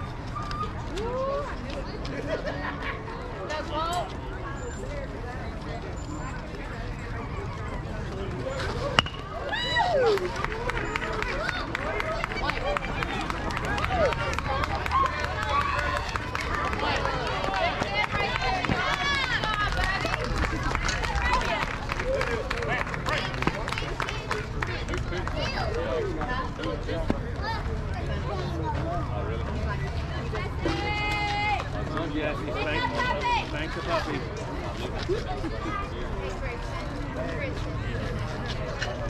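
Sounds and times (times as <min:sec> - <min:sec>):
spectators shouting and cheering: 0:08.1 - 0:26.0, 0:30.4 - 0:34.2
bat cracking on ball: 0:09.0 - 0:09.3.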